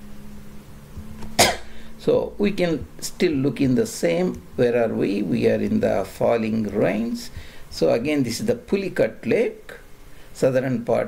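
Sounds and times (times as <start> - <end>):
faint low hum: 0.0 - 11.0
man coughing: 1.4 - 1.7.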